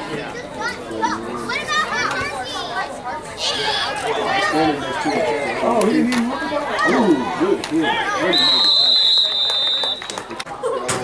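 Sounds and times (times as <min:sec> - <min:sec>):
children shouting: 0:03.4 - 0:04.8.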